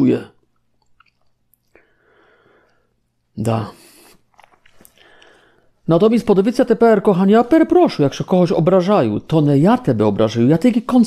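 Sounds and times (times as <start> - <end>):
man speaking: 0.0 - 0.4, 3.3 - 4.2, 5.8 - 11.0
mouth clicks and lip smacks: 0.4 - 1.9, 3.9 - 5.4
faint breathing: 1.7 - 3.0, 4.8 - 5.8.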